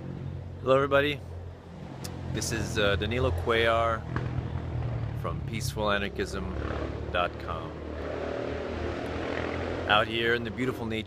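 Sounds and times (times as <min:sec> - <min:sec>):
engine drone: 0:01.2 - 0:11.0.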